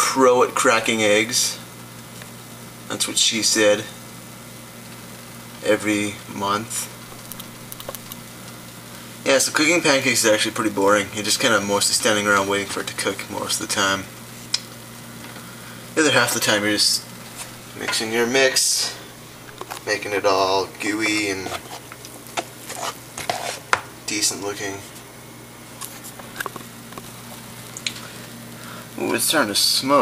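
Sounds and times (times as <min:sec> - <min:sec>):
steady low hum: 0:00.0 - 0:30.0
pancake sizzling in frying pan: 0:00.5 - 0:19.8, 0:20.8 - 0:24.0, 0:25.1 - 0:30.0.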